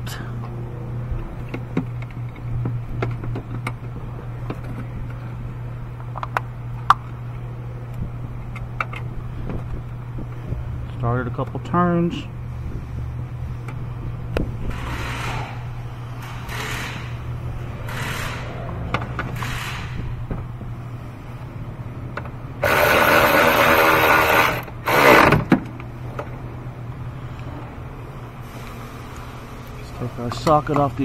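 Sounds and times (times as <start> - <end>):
cordless ratchet running: 16.2 - 17.2, 19.3 - 20.1, 22.6 - 25.4.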